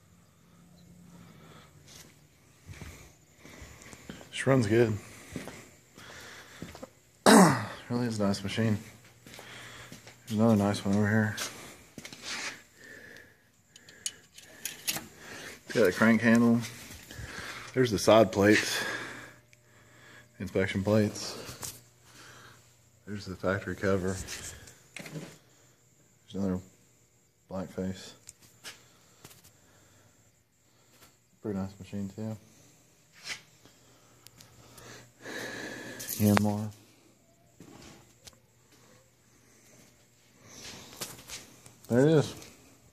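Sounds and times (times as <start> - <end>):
person sniffing: 12.2 - 13.0.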